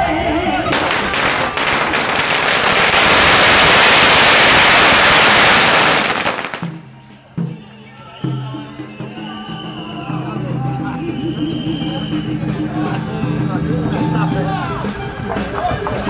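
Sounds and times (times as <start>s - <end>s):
firecrackers crackling: 0.5s - 6.8s.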